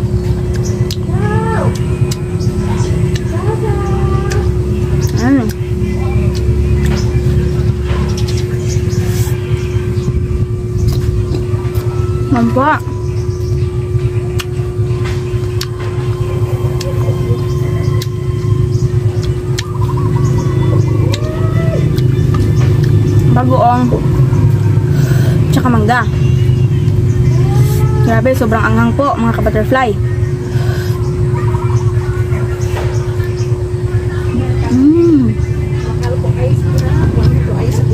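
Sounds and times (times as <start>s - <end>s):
low rumble with hum: 0.0s - 37.9s
motor running low drone: 0.0s - 37.9s.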